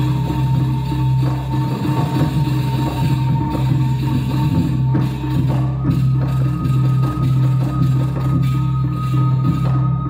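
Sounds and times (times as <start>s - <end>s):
drums: 0.0s - 10.0s
metallophones struck: 0.0s - 10.0s.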